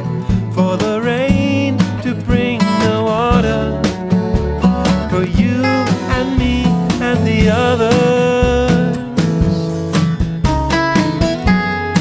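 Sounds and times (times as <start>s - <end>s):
song playing: 0.0s - 12.0s.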